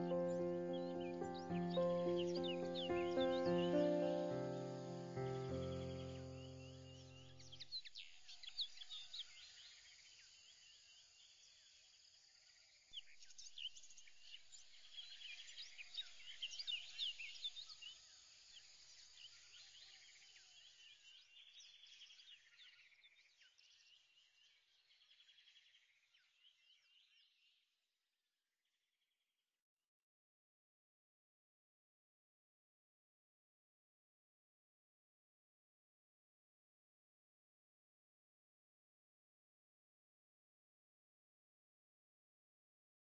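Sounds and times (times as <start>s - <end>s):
birds chirping and calling: 0.0s - 7.1s.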